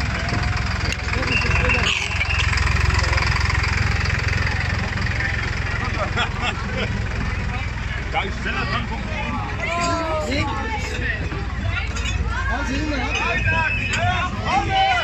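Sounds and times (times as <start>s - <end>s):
people's voices: 0.0s - 15.0s
tractor diesel engine rumbling: 0.0s - 15.0s.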